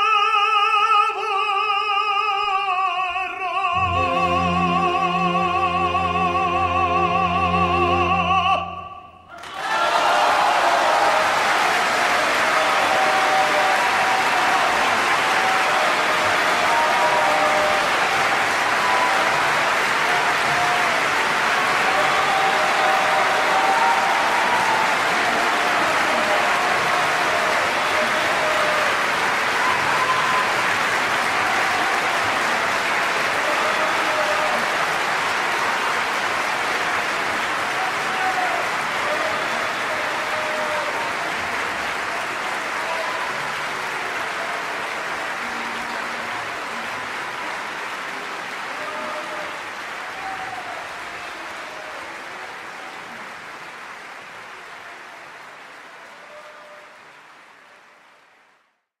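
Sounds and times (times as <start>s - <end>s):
audience applauding: 3.6s - 8.7s, 9.3s - 58.8s
crowd shouts: 9.3s - 47.4s, 48.7s - 53.0s.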